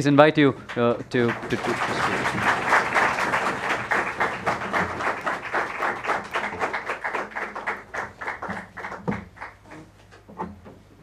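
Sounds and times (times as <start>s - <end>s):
audience applauding: 0.6s - 9.8s.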